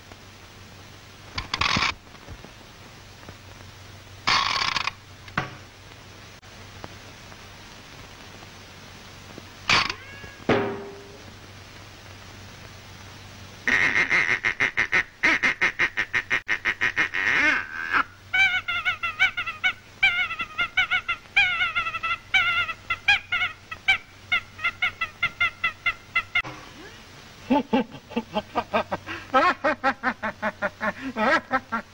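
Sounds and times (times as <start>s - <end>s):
cartoon character laughing: 17.2s - 26.5s, 27.5s - 31.9s.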